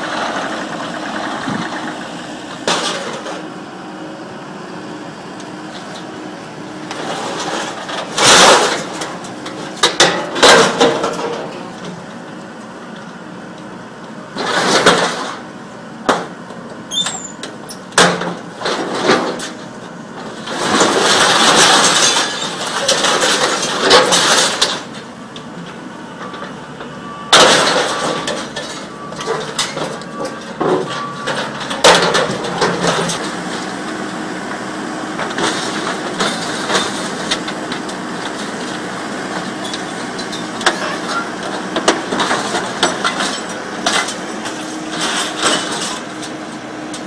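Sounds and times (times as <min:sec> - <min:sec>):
excavator engine and hydraulics: 0:00.0 - 0:47.0
shear crunching scrap metal: 0:00.0 - 0:47.0.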